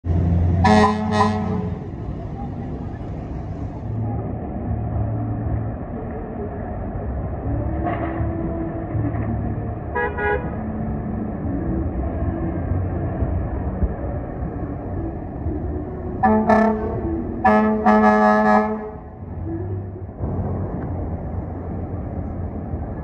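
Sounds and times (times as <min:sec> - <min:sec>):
fire engine running: 0:00.0 - 0:23.0
fire engine horn blasts: 0:00.6 - 0:01.9, 0:09.9 - 0:10.6, 0:16.2 - 0:19.1.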